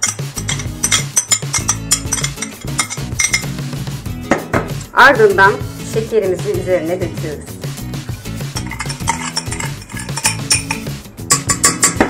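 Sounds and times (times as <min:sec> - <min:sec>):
spoon scraping and tapping glass: 0:00.0 - 0:03.8, 0:08.3 - 0:12.0
background music: 0:00.0 - 0:12.0.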